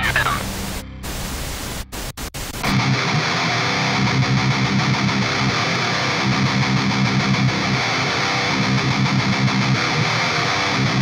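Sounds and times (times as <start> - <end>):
voice sample: 0.0 - 0.8
static noise hiss: 0.0 - 2.7.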